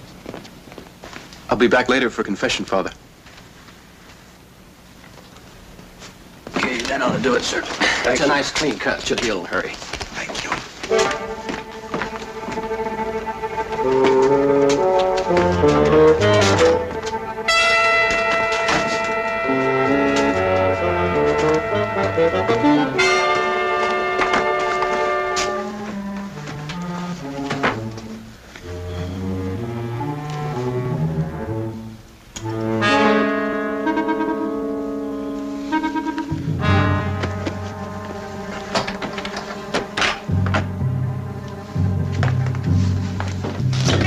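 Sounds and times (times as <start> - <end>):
orchestral brass music: 10.9 - 43.3.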